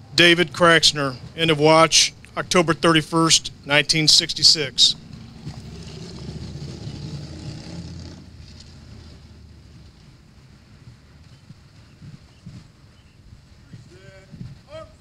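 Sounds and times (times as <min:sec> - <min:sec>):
low outdoor rumble: 0:00.0 - 0:15.0.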